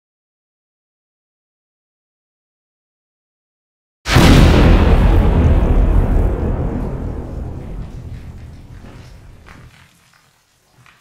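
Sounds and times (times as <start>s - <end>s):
explosion boom rumble: 4.1s - 9.7s.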